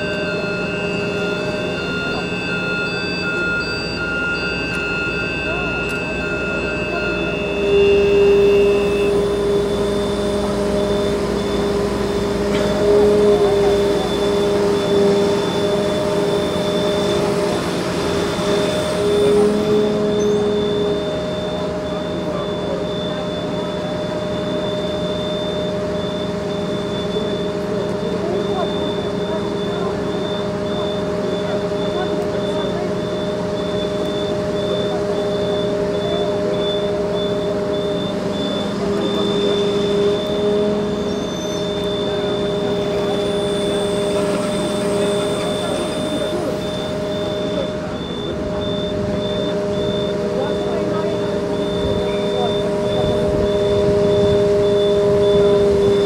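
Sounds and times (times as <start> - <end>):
faint high-pitched broken tone: 0.0 - 17.2
fire truck engine drone: 0.0 - 56.0.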